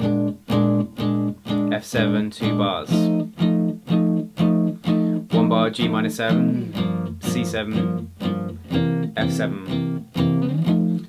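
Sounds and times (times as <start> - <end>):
jazz guitar strumming chords: 0.0 - 11.0.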